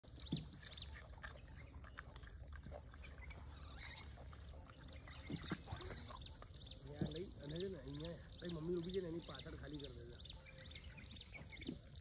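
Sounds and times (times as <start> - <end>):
monkey chewing apple: 0.0 - 7.8.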